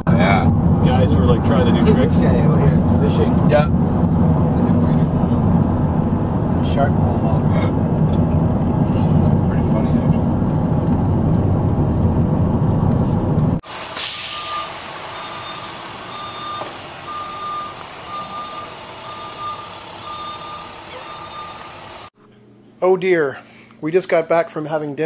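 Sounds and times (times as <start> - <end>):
car road noise: 0.0 - 22.1
short loud hiss: 13.9 - 14.8
reversing alarm beeping: 14.3 - 22.1.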